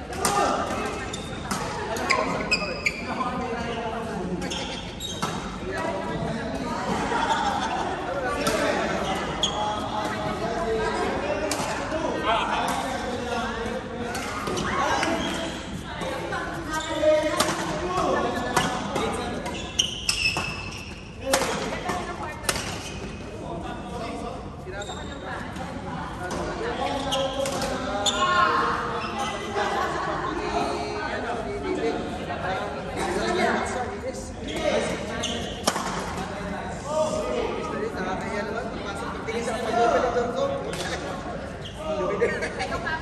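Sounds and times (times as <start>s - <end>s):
players' voices and chatter: 0.0s - 43.0s.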